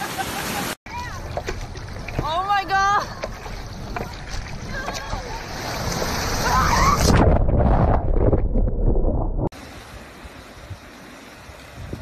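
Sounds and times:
surf rushing: 0:00.0 - 0:08.4
wind buffeting microphone: 0:01.0 - 0:12.0.

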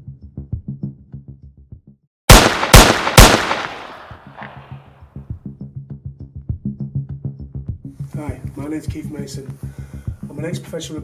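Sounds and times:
loud echoing gunshots: 0:02.3 - 0:04.8.

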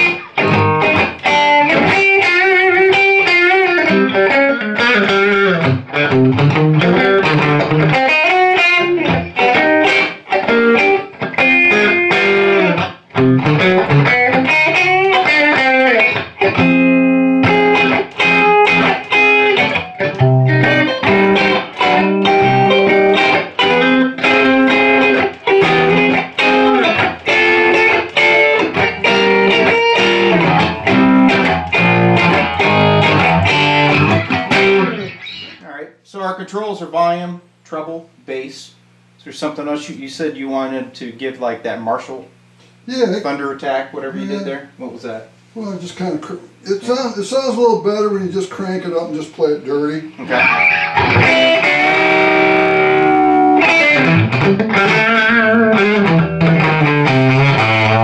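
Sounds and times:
electric guitar notes and chords: 0:00.0 - 0:35.6, 0:50.1 - 0:58.0.

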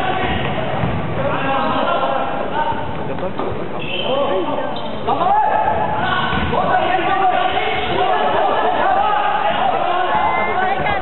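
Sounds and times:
players calling out indoors: 0:00.0 - 0:02.8, 0:03.8 - 0:11.0.

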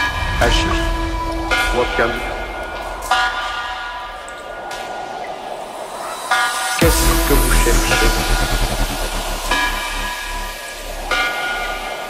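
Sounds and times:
hissing noise: 0:00.0 - 0:12.0
sustained high electronic chord: 0:06.2 - 0:12.0
faint low bass: 0:06.8 - 0:11.8.

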